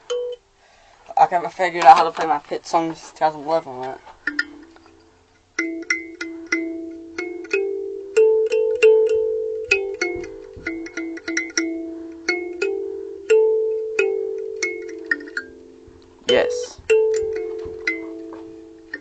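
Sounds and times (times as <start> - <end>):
kalimba notes plucked: 4.3 - 5.0, 5.6 - 19.0.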